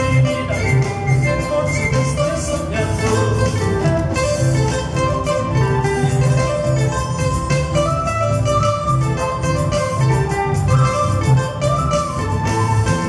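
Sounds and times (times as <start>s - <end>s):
electric bass line: 0.0s - 13.0s
guitar melody: 0.0s - 13.0s.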